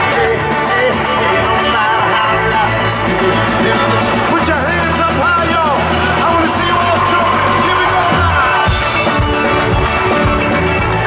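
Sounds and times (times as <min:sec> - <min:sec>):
deep bass: 0:00.0 - 0:11.0
keyboards: 0:00.0 - 0:11.0
person singing: 0:00.0 - 0:11.0
strummed acoustic guitar: 0:00.0 - 0:11.0.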